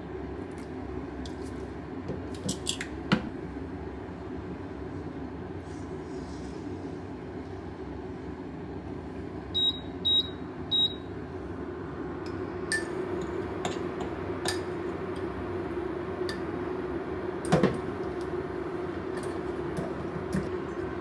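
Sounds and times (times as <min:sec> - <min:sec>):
steady low hum: 0:03.0 - 0:21.0
appliance electronic beeps: 0:09.5 - 0:11.1.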